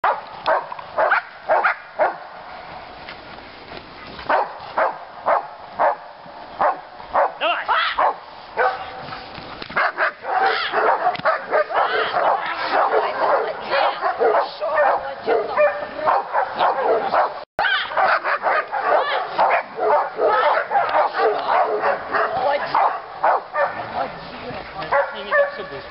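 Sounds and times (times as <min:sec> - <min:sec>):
dog barking: 0:00.0 - 0:02.3, 0:04.3 - 0:09.1, 0:09.8 - 0:24.0, 0:24.8 - 0:25.9.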